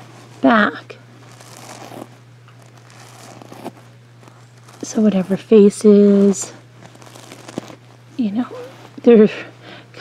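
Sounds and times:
sequins rustling under a hand: 1.2 - 9.1.

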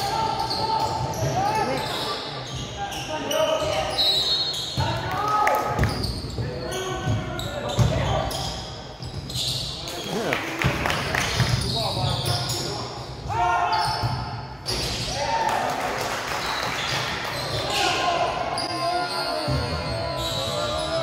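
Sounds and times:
voices echoing in gymnasium: 0.0 - 21.0.

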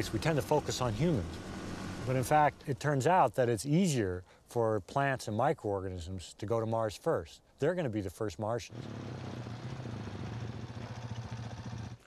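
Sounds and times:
vehicle engine humming: 0.0 - 3.0, 8.7 - 12.0.

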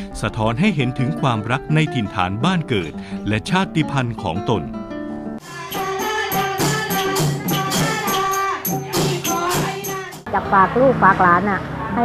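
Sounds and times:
long drum folk music: 5.4 - 10.3
woman talking: 10.3 - 12.0.

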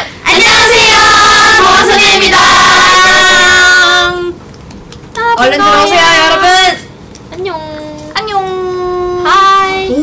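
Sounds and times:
young women calling sing-song greeting: 0.3 - 4.4, 5.2 - 6.8.

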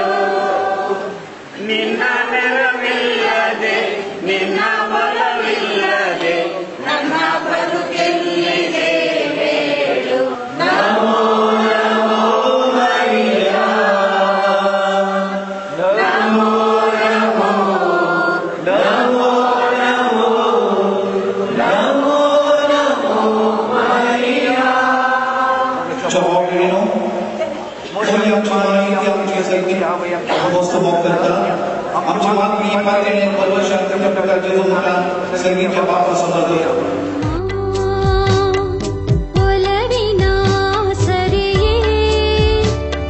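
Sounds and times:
voices singing devotional chant: 0.0 - 42.6.

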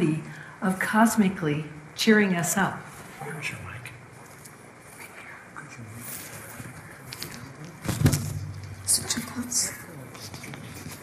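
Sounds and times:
microphone rustling and crackling: 6.1 - 9.2.

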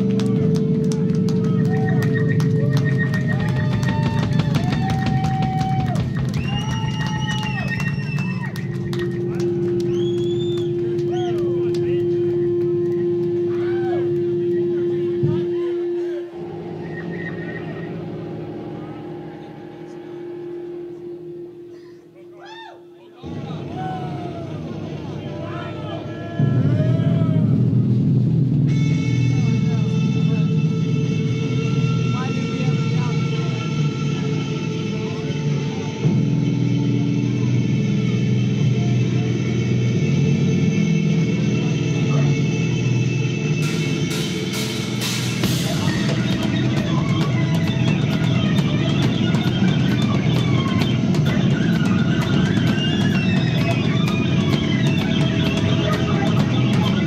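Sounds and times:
noisy low drone: 0.0 - 57.0
live rock band playing: 43.6 - 57.0.

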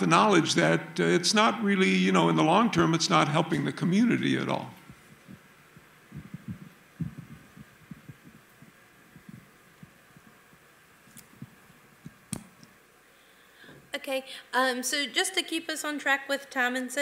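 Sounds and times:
faint room hum: 0.0 - 17.0
microphone handling thumps: 4.8 - 12.6.

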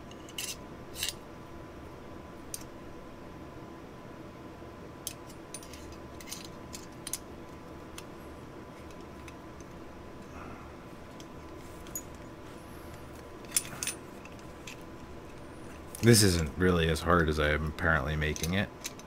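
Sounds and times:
metallic clicks of gun parts: 18.2 - 19.0.

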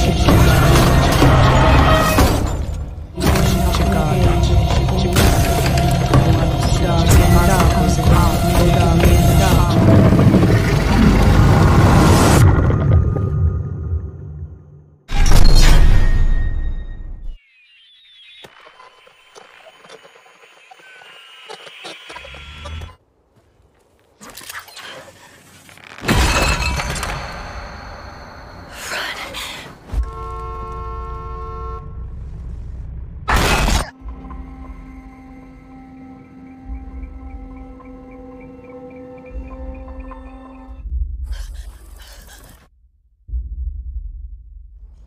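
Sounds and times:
tense film music: 0.0 - 17.5, 29.9 - 45.0.

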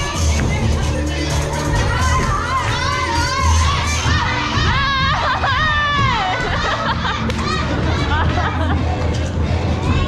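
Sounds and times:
dance music: 0.0 - 10.0
audience shouting and cheering: 1.7 - 8.2.

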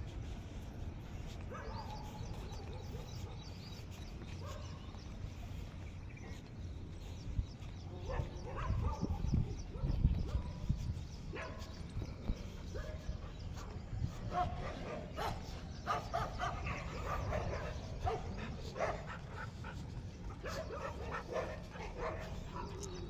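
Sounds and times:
wind rumble on microphone: 0.0 - 23.0.

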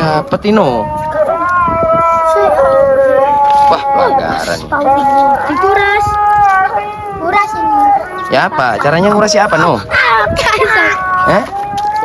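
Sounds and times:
child exclaiming ohhh: 1.3 - 2.9, 10.0 - 11.3.

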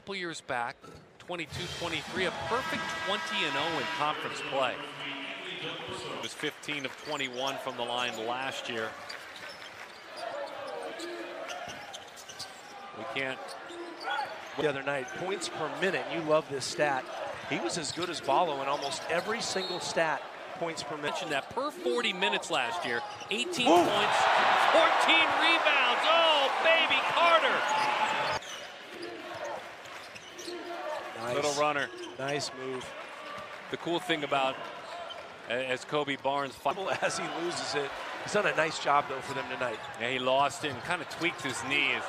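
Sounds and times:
arena crowd noise: 1.4 - 42.0.

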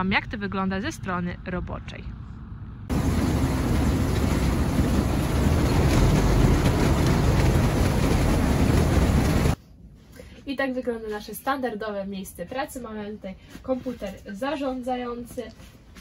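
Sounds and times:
harvester mechanical din: 2.9 - 9.6.

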